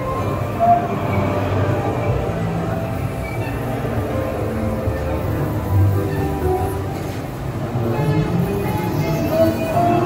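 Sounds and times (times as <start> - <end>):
ride running on overhead rail: 0.0 - 10.0.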